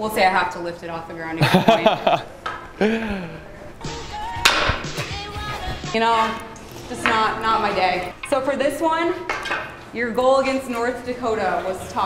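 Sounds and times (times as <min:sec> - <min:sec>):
hockey stick striking puck: 0:04.4 - 0:05.0.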